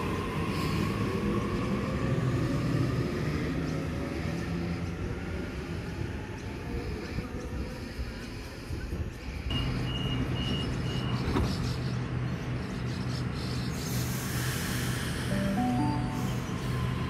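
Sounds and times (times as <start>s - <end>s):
electric train humming: 15.1s - 17.0s
short high beeps: 15.3s - 16.7s.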